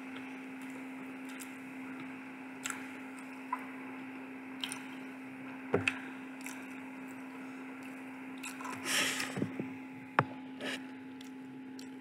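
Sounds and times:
wet chewing: 4.6 - 4.9, 5.8 - 7.2.

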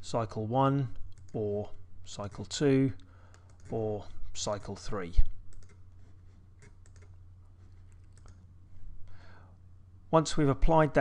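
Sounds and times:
person speaking: 0.0 - 5.8
computer mouse clicks: 3.3 - 3.8, 5.5 - 5.8, 6.6 - 8.4.

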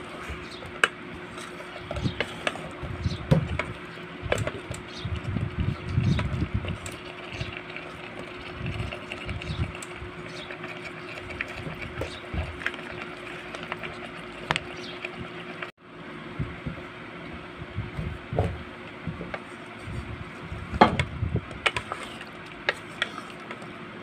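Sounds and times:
wooden spatula stirring: 0.1 - 2.8, 6.2 - 15.7, 21.6 - 23.7.

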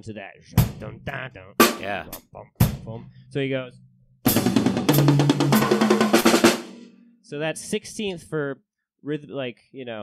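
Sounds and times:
fast drum kit fill: 4.3 - 6.9.

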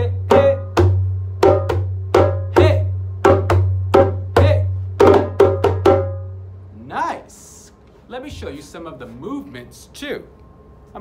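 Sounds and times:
hand drum struck with hands: 0.2 - 6.3.

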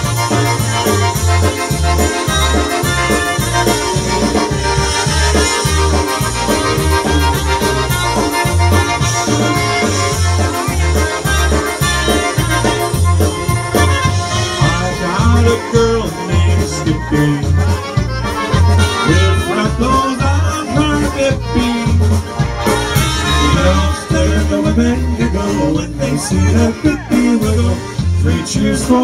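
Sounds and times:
accordion: 0.0 - 29.0
bass beat: 0.0 - 29.0
drums: 0.0 - 29.0
trumpet: 0.0 - 29.0.

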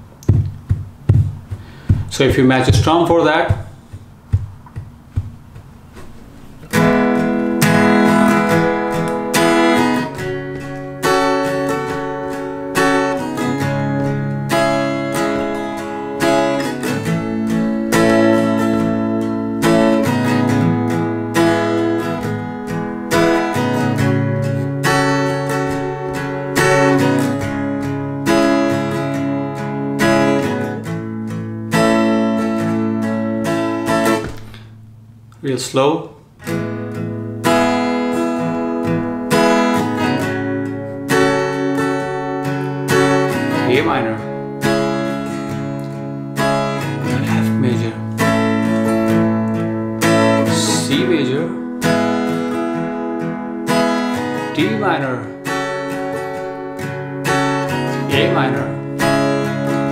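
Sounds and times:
acoustic guitar strumming: 0.0 - 59.9.

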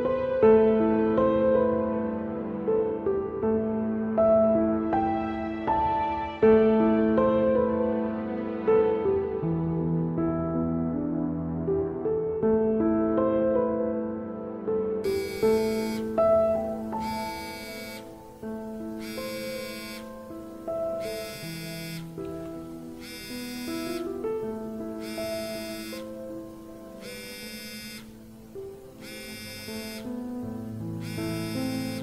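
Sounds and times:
mobile phone buzzing ringtone: 15.0 - 32.0
slow melodic tune: 15.0 - 32.0.

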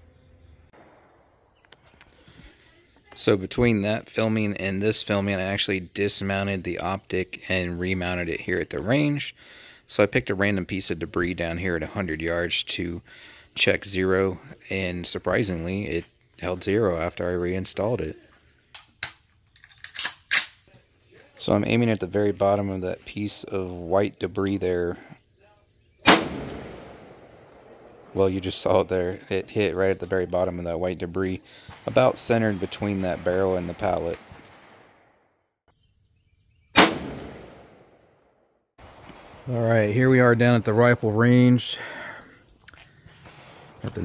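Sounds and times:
rifle shot: 26.0 - 28.1, 33.9 - 35.0, 36.8 - 38.2.

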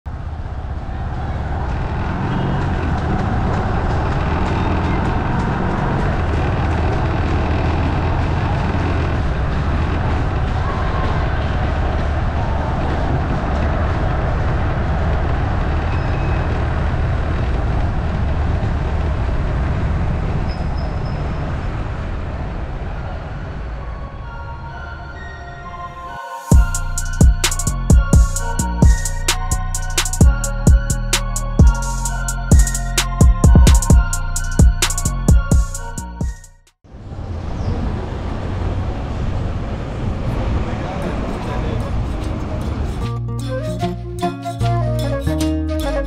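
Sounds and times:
motorbike engine and road noise: 0.1 - 24.0, 36.8 - 43.3.

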